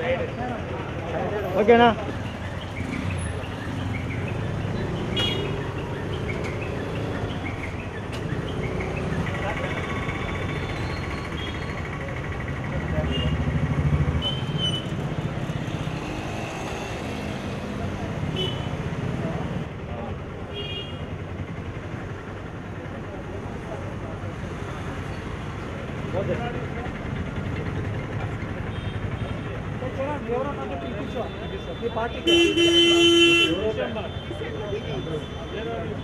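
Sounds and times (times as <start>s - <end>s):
vehicle engines running: 0.0s - 36.0s.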